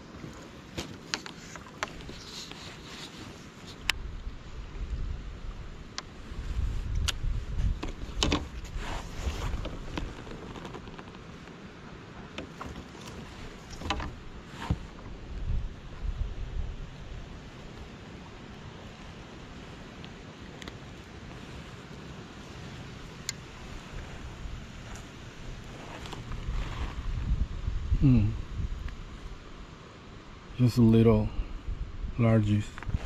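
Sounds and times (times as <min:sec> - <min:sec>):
wind buffeting microphone: 0:03.8 - 0:11.1, 0:13.2 - 0:19.9, 0:21.0 - 0:29.7, 0:30.8 - 0:33.0
gear clicks and knocks: 0:07.8 - 0:11.4, 0:12.3 - 0:14.9.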